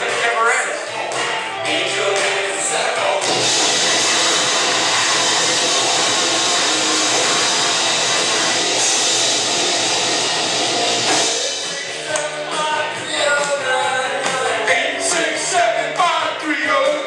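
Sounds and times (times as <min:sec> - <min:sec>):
distorted guitar and drums: 0:00.0 - 0:17.0.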